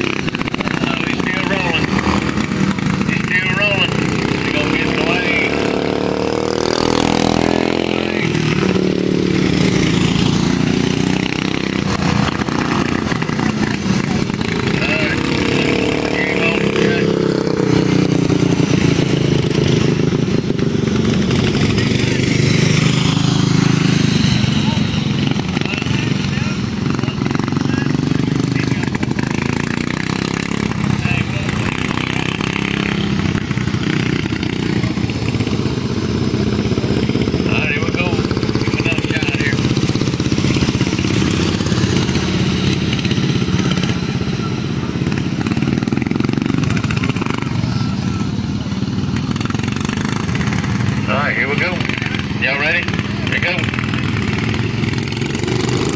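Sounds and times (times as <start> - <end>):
kart engines droning: 0.0 - 55.9.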